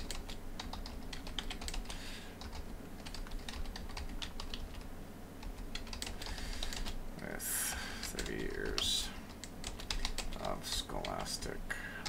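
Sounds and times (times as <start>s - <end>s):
typing on computer keyboard: 0.0s - 4.8s, 5.4s - 7.0s, 8.0s - 11.3s.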